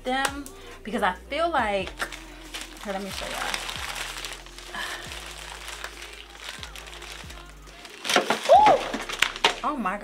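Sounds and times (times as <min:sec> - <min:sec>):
music with sliding bass: 0:00.0 - 0:10.0
fabric bags rustling: 0:02.0 - 0:09.8.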